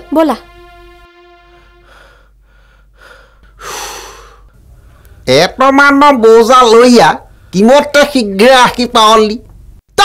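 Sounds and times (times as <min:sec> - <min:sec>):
person gasping: 0:01.7 - 0:05.2.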